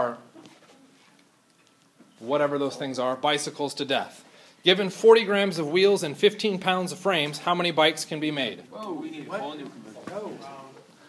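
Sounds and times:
man speaking: 2.2 - 10.9.

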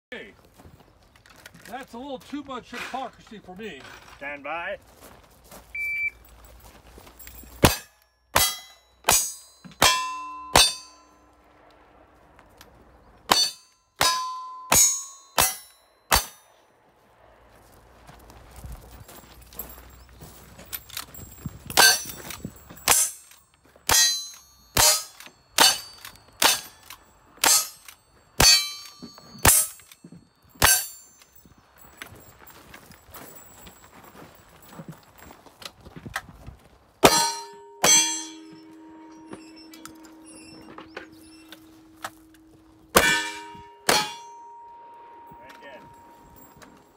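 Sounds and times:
steel targets ringing: 7.2 - 11.5, 13.3 - 16.6, 19.4 - 32.2, 37.0 - 46.9.

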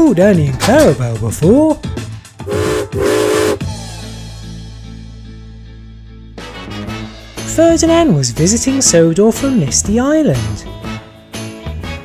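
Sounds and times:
steam locomotive whistle: 2.4 - 3.7
steady background music note: 2.4 - 3.8.

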